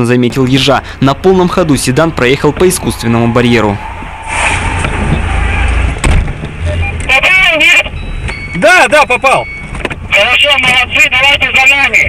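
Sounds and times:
man speaking: 0:00.0 - 0:03.8, 0:10.1 - 0:12.0
car engine and road noise: 0:00.0 - 0:12.0.

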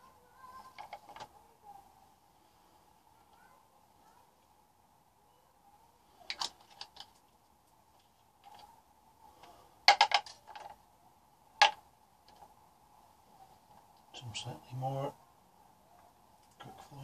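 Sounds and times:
faint steady hum: 0:00.0 - 0:17.0
plastic pots clicking and clacking: 0:00.6 - 0:01.3, 0:06.3 - 0:07.4, 0:08.0 - 0:08.7, 0:09.4 - 0:10.8, 0:11.6 - 0:12.5.

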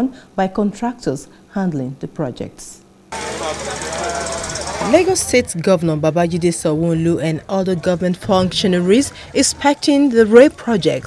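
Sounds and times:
background voices: 0:03.1 - 0:11.0
machinery noise: 0:03.1 - 0:11.0.

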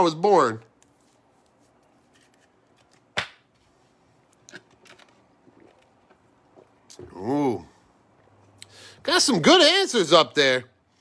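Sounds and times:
cards rustling: 0:00.7 - 0:03.8
sharp click of cards: 0:02.8 - 0:03.5.

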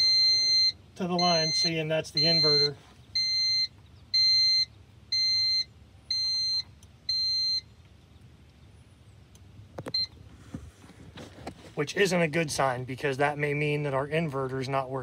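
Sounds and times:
high-pitched alarm beeps: 0:00.0 - 0:07.7.

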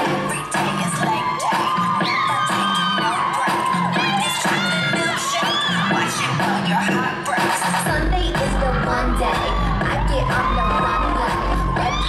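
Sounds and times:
audience cheering and shouting: 0:00.0 - 0:12.0
dance backing music: 0:00.0 - 0:12.0.

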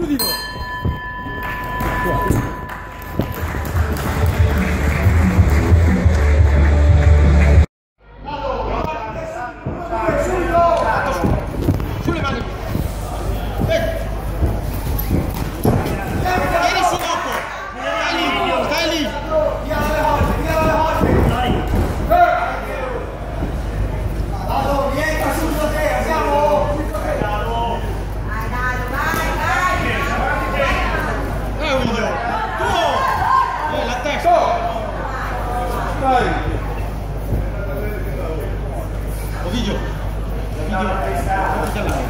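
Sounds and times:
bell ringing: 0:00.2 - 0:04.6
loud music with heavy bass: 0:03.8 - 0:07.6
voices in a hall: 0:08.0 - 0:42.0.

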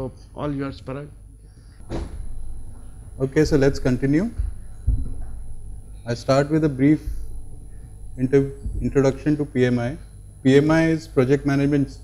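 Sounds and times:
microphone handling rumble: 0:00.6 - 0:11.2
sudden knock: 0:01.8 - 0:05.6, 0:07.1 - 0:09.4.

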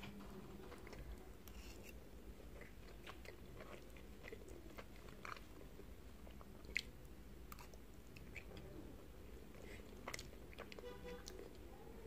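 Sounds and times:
close chewing mouth sounds: 0:02.4 - 0:08.7, 0:09.4 - 0:11.7.

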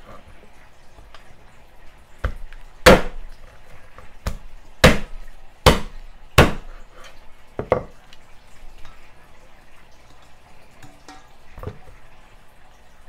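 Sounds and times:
cleaver chopping on wooden board: 0:02.2 - 0:03.2, 0:04.2 - 0:06.7.

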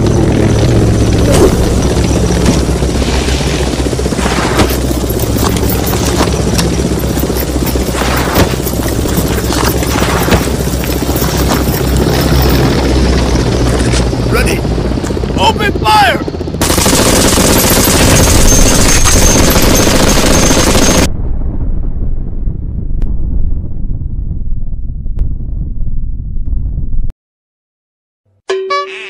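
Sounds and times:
low rumble: 0:00.0 - 0:15.4, 0:21.0 - 0:27.1
machine gun firing in bursts: 0:00.8 - 0:13.0, 0:16.6 - 0:21.1
loud explosion blast: 0:21.1 - 0:27.1.

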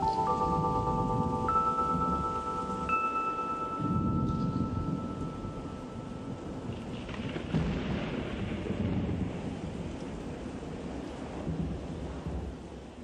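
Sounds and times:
steady rain: 0:00.0 - 0:13.0
low rolling thunder: 0:03.8 - 0:13.0.

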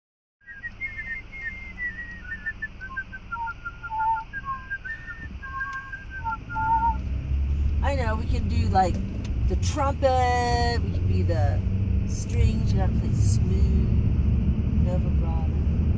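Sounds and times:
person whistling a tune: 0:00.4 - 0:07.0
car road rumble: 0:00.4 - 0:15.9.

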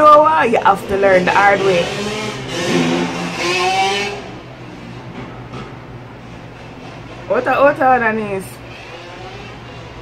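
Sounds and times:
vehicle driving past: 0:00.9 - 0:07.3.

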